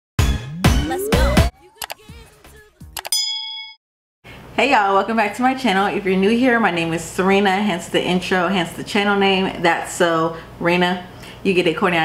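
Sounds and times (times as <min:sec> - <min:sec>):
sharp mouse click: 0:03.0 - 0:03.2
bell-like notification ding: 0:03.0 - 0:03.8.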